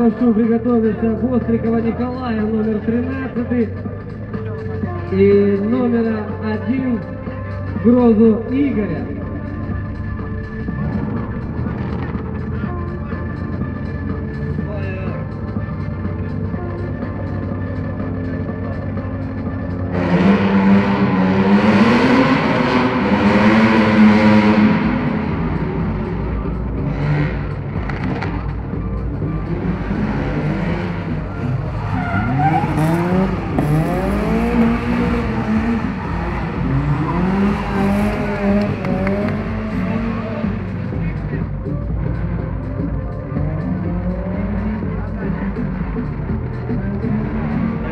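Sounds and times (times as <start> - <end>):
car engine revving hard: 19.0 - 42.8, 43.4 - 47.9.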